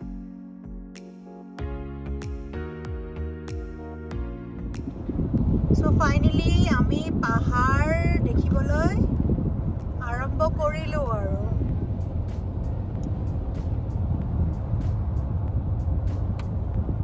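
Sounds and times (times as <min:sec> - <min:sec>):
car road rumble: 0:04.1 - 0:17.0
faint light ticks: 0:16.1 - 0:16.6.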